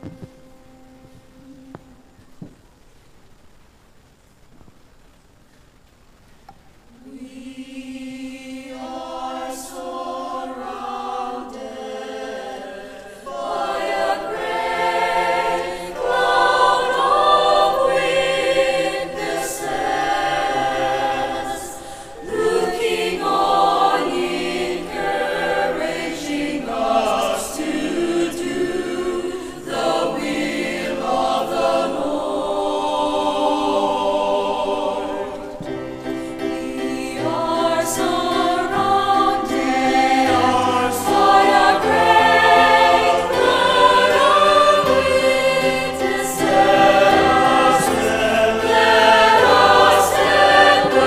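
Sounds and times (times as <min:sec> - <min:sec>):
mixed choir singing a cappella: 0:06.9 - 0:51.0.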